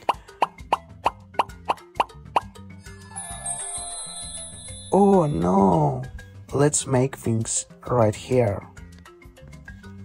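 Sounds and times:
cartoon plop sound effects: 0:00.0 - 0:02.5
light children's music: 0:00.0 - 0:10.0
high sparkling shimmer effect: 0:03.0 - 0:05.5.

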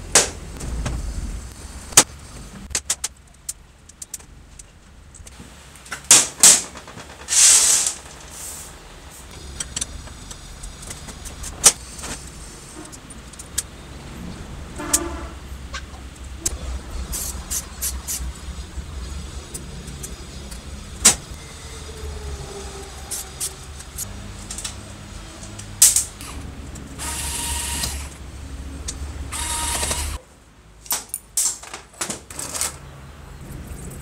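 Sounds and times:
low steady hum: 0:00.0 - 0:05.8.

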